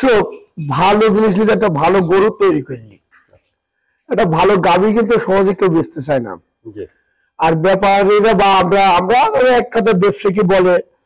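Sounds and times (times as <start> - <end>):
man speaking: 0.0 - 3.4, 4.1 - 10.8.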